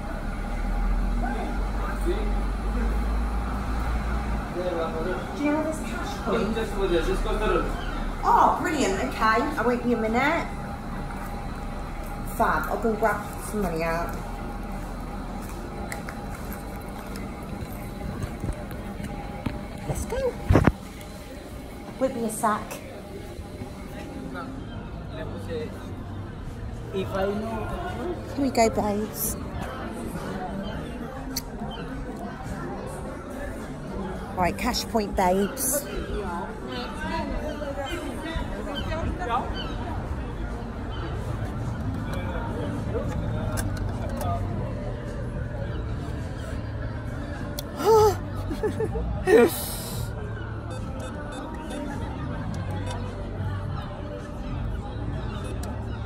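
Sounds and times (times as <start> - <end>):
traffic rumble: 0.0 - 55.9
people's voices in background: 0.0 - 56.0
low background rumble and hum: 7.8 - 32.8.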